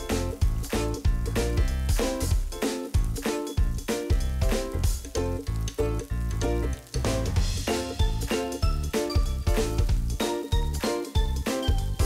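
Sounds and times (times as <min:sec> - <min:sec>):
background music with steady beat: 0:00.0 - 0:12.0
food frying in oil: 0:00.0 - 0:12.0.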